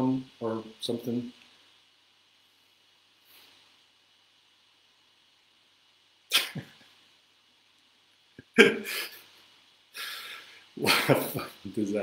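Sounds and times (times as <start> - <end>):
man laughing: 6.3 - 6.8, 8.4 - 9.3, 10.8 - 11.6.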